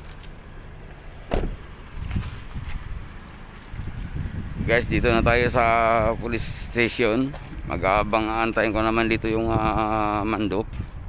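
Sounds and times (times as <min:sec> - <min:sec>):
low outdoor rumble: 0:00.0 - 0:11.0
car door thump: 0:01.2 - 0:01.7.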